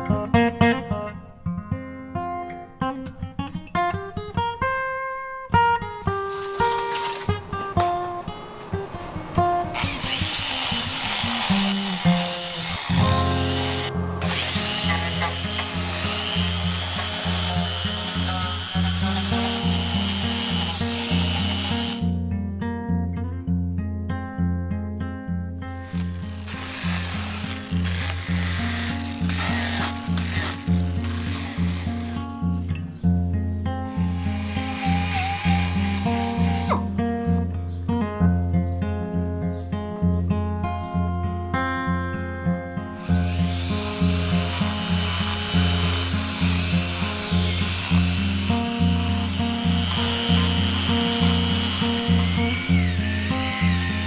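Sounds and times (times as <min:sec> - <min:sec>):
acoustic guitar music: 0:00.0 - 0:54.0
power tool abrading wood: 0:06.1 - 0:22.2, 0:25.7 - 0:32.5, 0:33.9 - 0:36.9, 0:43.0 - 0:54.0
die grinder whining into hardwood: 0:06.4 - 0:07.4, 0:09.6 - 0:22.2, 0:25.8 - 0:32.3, 0:33.9 - 0:36.8, 0:43.0 - 0:54.0.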